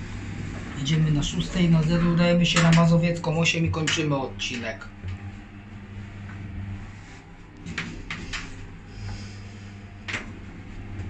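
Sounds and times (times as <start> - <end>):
elevator low hum: 0.0 - 11.0.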